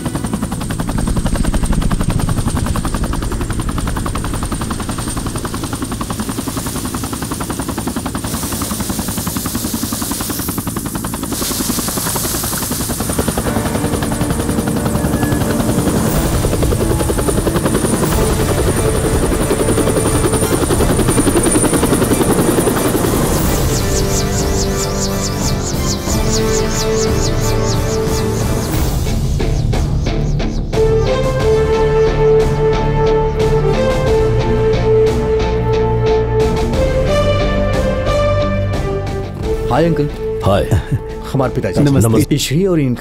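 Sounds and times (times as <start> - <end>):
turbine whine: 0.0 - 39.6
helicopter rotor chop: 0.0 - 43.0.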